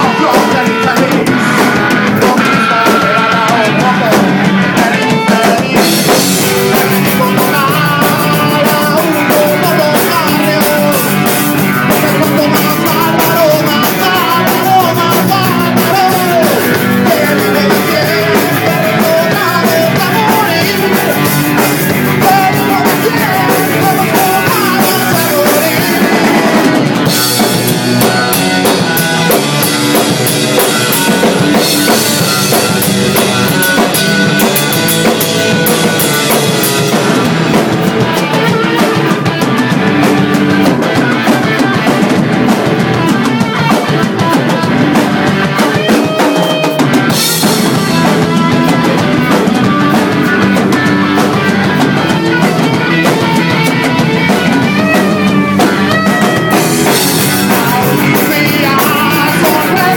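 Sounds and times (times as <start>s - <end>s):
drum kit with cymbals: 0.0s - 59.9s
electric guitar: 0.0s - 59.9s.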